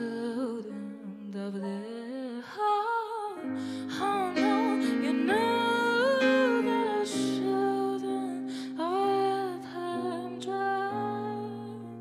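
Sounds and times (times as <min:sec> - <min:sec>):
woman singing: 0:00.0 - 0:12.0
guitar and keyboard chords: 0:03.4 - 0:12.0.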